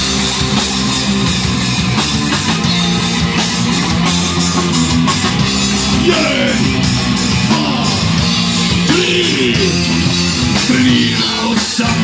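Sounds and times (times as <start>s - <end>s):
bass guitar: 0.0s - 12.0s
distorted electric guitar chords: 0.0s - 12.0s
drum kit beat: 0.0s - 12.0s.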